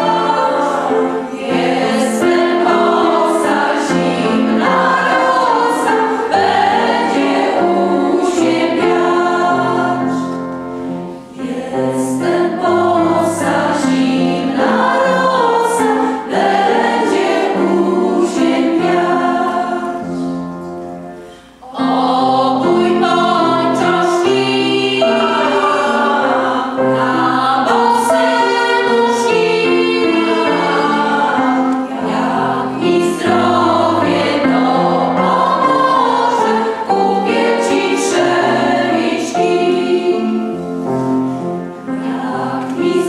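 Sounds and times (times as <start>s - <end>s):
women's choir singing: 0.0s - 43.0s.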